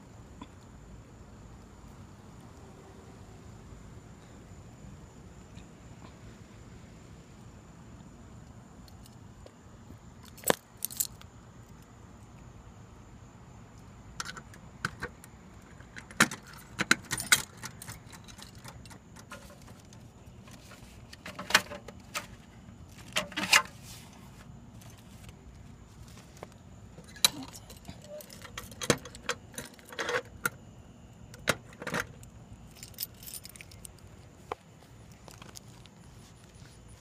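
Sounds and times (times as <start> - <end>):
faint background hiss: 0.0 - 37.0
keys jangling: 16.1 - 19.9, 27.0 - 30.3, 32.7 - 34.1.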